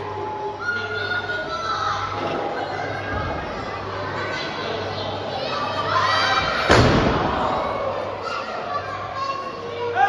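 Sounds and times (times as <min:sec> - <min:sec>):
audience chattering and calling out: 0:00.0 - 0:10.0
children's voices: 0:00.0 - 0:10.0.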